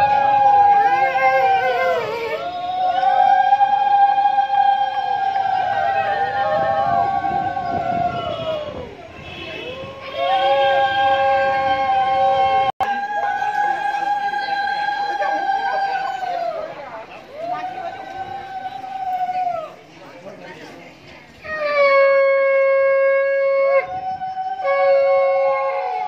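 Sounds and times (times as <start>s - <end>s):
conch shells blown: 21.4s - 26.0s.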